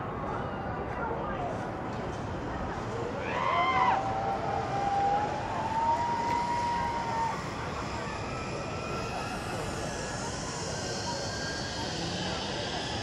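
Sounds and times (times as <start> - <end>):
rush of background noise: 0.0 - 13.0
faint high whine: 2.8 - 13.0
zip-wire pulleys whining on cable: 3.0 - 13.0.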